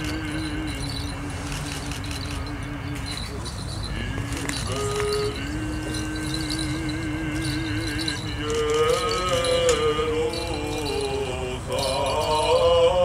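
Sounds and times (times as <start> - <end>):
voice chanting with vibrato: 0.0 - 13.0.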